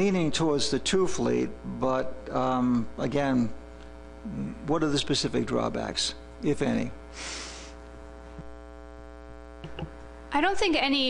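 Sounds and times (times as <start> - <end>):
electrical mains hum: 0.0 - 11.0
short hiss: 7.1 - 7.8.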